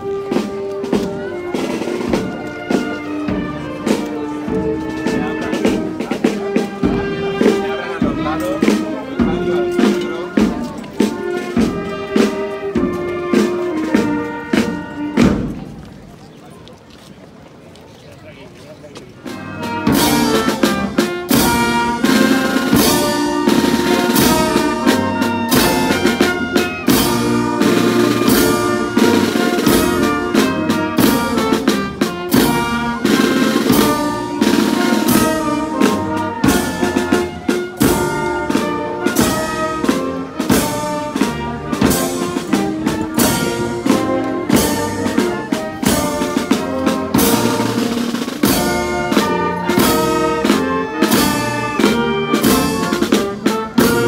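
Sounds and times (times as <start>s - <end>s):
marching band playing: 0.0s - 16.2s, 18.3s - 54.0s.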